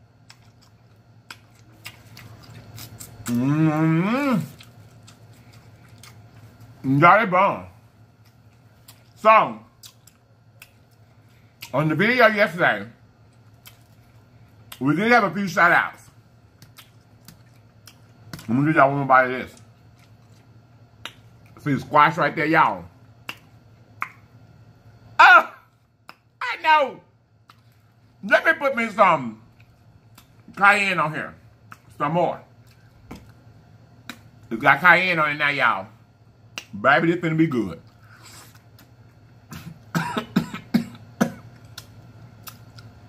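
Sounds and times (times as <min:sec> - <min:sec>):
faint low hum: 0:00.0 - 0:43.0
man coughing: 0:39.5 - 0:41.5.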